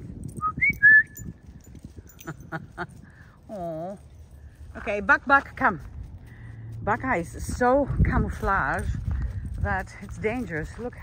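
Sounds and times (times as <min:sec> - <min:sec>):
person whistling: 0:00.4 - 0:01.3.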